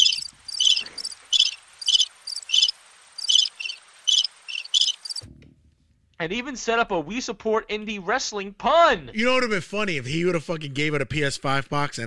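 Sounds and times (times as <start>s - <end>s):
crickets chirping: 0.0s - 5.2s.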